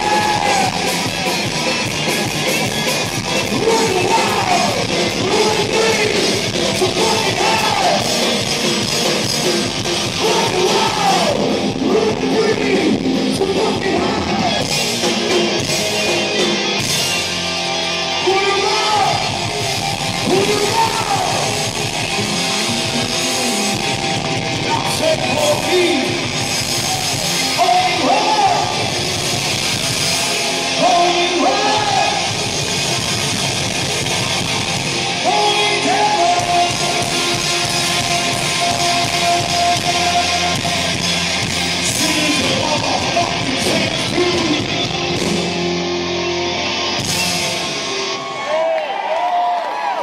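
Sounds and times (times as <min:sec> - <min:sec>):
crowd cheering and whooping: 0:00.0 - 0:12.0, 0:13.6 - 0:50.0
distorted electric guitars: 0:00.0 - 0:48.6
metal band playing live: 0:00.0 - 0:48.6.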